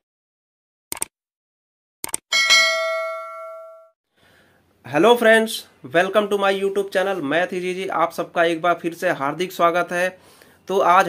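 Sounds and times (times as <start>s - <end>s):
bright bell chime: 2.3s - 4.0s.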